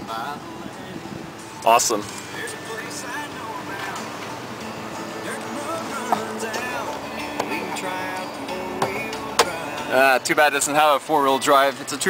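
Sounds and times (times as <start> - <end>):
music on car radio: 0.0 - 12.0.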